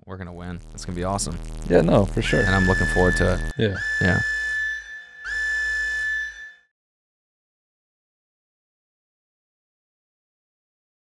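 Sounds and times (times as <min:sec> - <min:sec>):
high whistle-like tone: 0:01.9 - 0:06.7.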